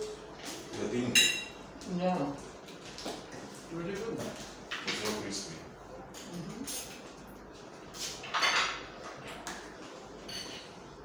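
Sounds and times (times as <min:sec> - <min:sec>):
plates and cutlery clinking: 0:00.0 - 0:01.6, 0:08.0 - 0:10.9.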